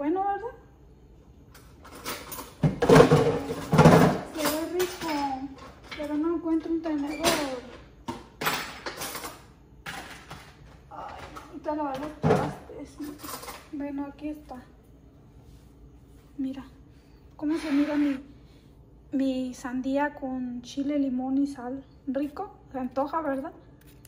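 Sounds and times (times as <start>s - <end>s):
kitchen clatter: 1.5s - 14.0s
woman talking indistinctly: 3.1s - 7.8s, 17.4s - 18.3s.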